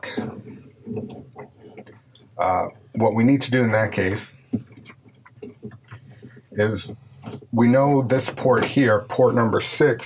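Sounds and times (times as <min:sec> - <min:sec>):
cable handling sounds: 0:00.0 - 0:02.4, 0:04.5 - 0:09.0.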